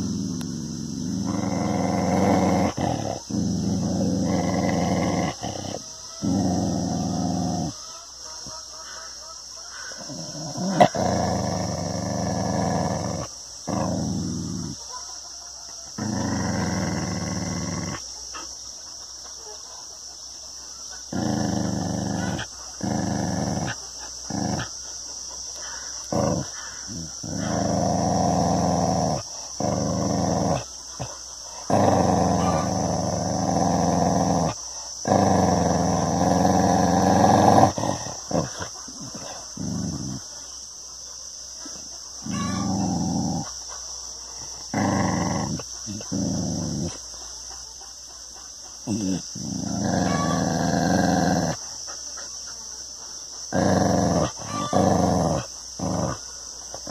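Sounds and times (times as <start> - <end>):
dog growling: 0.0 - 8.0, 9.7 - 15.0, 15.8 - 18.6, 20.9 - 40.6, 41.6 - 47.4, 48.8 - 52.3, 53.4 - 56.9.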